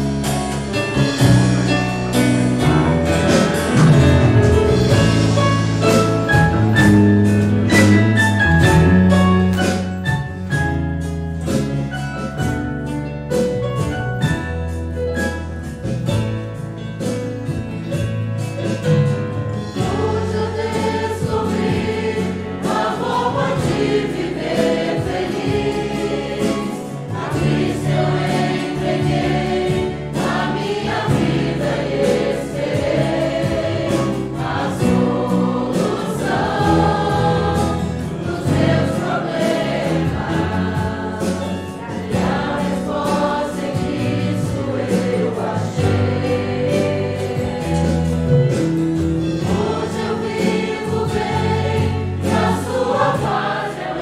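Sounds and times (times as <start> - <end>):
congregation singing a hymn: 0.0 - 10.7, 18.6 - 54.0
instrumental accompaniment: 0.0 - 54.0.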